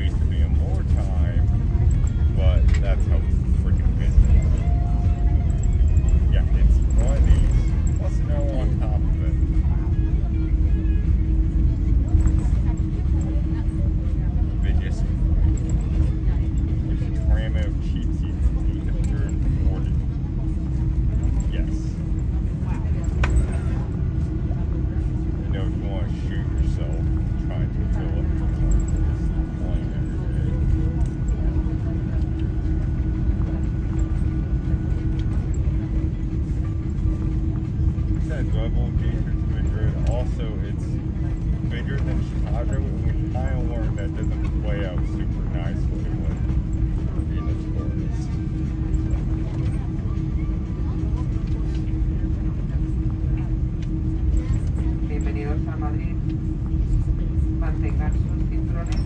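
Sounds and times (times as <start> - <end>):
engine hum: 0.0 - 59.0
faint cabin voices: 0.0 - 59.0
low rumble of plane rolling: 0.0 - 59.0.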